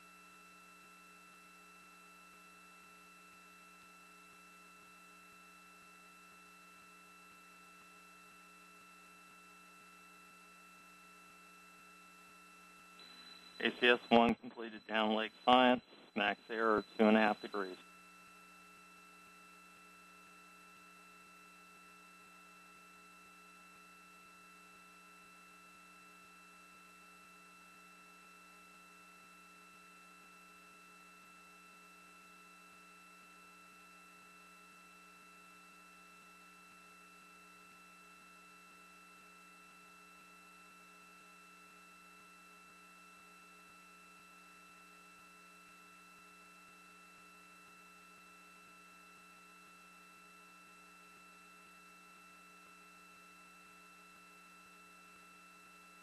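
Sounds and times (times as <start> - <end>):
faint electrical hum: 0.1 - 25.4.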